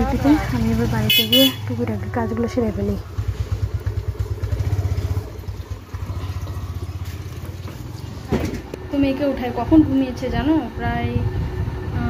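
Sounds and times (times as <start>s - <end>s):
small motorcycle engine running: 0.0s - 12.0s.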